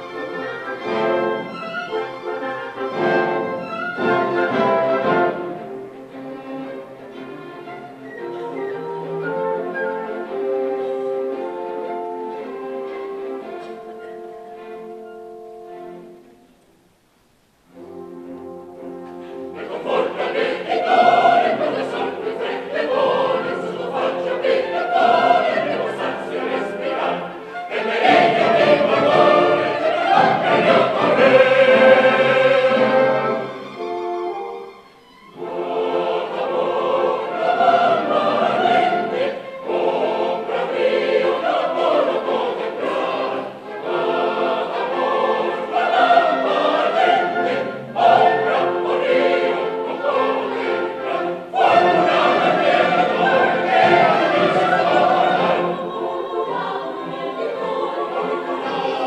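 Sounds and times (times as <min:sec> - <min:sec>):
musical accompaniment: 0:00.0 - 0:59.0
mixed chorus singing: 0:19.2 - 0:33.8, 0:35.3 - 0:59.0.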